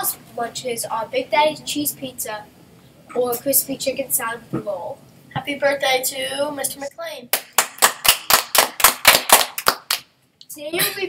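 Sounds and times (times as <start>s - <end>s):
people clapping: 7.3s - 10.1s.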